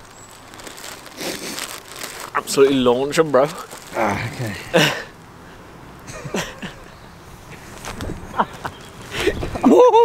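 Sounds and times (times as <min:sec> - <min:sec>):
plastic bread bag crinkling: 0:00.0 - 0:05.1.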